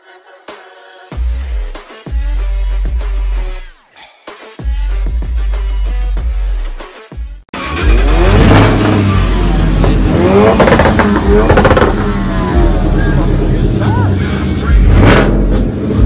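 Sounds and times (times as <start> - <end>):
car engine revving: 7.6 - 16.0.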